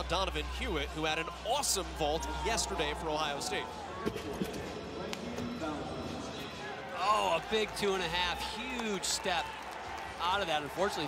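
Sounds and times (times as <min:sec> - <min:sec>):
voices in arena: 0:00.0 - 0:11.0.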